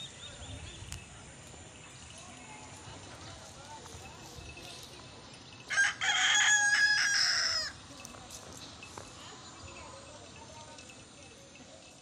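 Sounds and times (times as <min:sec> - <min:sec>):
rooster crowing: 0:05.7 - 0:07.8.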